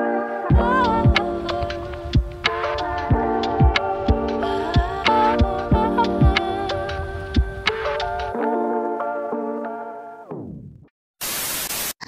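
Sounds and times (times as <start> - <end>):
white noise static burst: 11.2 - 12.0.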